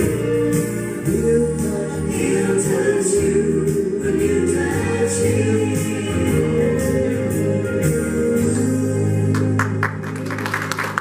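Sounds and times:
voices singing along: 0.0 - 9.5
instrumental backing: 0.0 - 11.0
man singing into microphone: 1.0 - 6.1.

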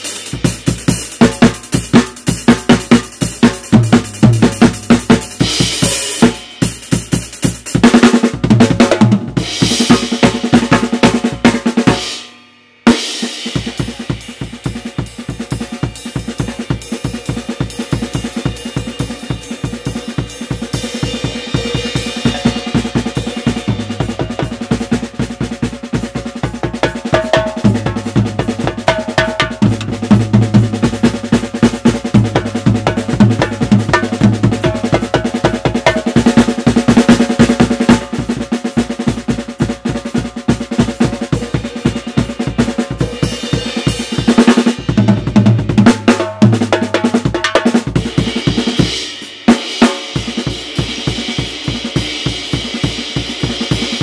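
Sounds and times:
snare and bass drum strokes: 0.0 - 54.0.

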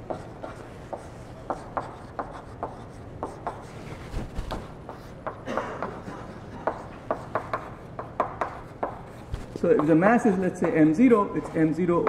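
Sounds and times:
chalk writing on a blackboard: 0.0 - 11.0.

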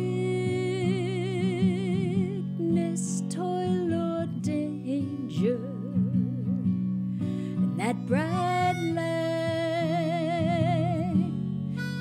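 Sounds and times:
harmonica held notes: 8.5 - 11.1, 11.7 - 12.0.

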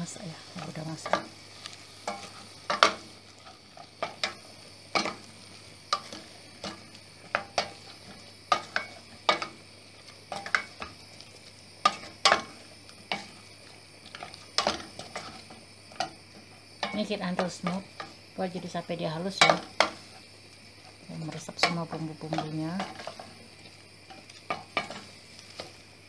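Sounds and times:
faint sizzle of frying: 0.0 - 26.0
wooden spoon scraping metal pot: 14.0 - 16.2, 20.8 - 25.7.

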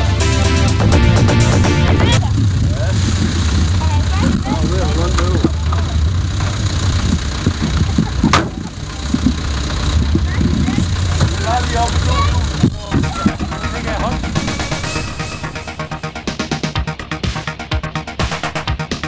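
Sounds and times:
electronic music: 0.0 - 2.9, 12.1 - 19.0
car engine running low: 0.0 - 17.6
people calling out: 1.7 - 2.9, 10.2 - 16.2.

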